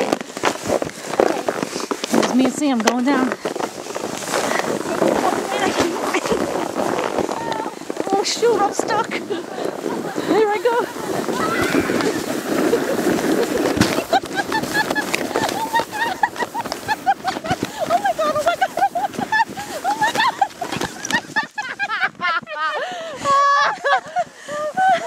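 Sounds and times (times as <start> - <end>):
sled scraping over snow: 0.0 - 25.0
people laughing and squealing: 9.2 - 25.0.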